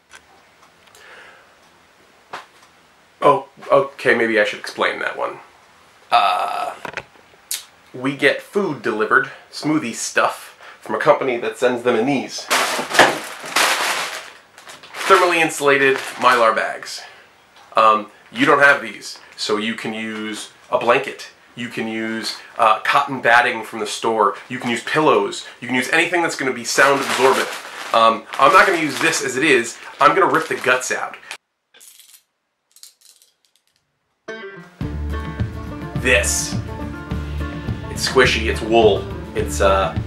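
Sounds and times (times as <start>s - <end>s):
mylar bag crinkling: 12.5s - 16.8s, 25.7s - 31.4s
background music: 34.3s - 40.0s.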